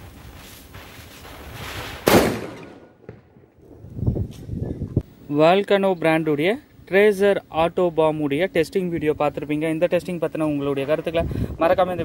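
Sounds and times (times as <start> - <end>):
firecracker bang: 0.7 - 3.5.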